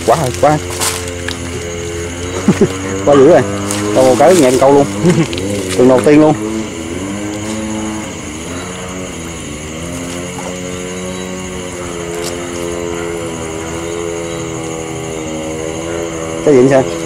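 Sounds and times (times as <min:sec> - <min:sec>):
engine running: 0:00.0 - 0:17.0
high-pitched insect chorus: 0:00.0 - 0:17.0.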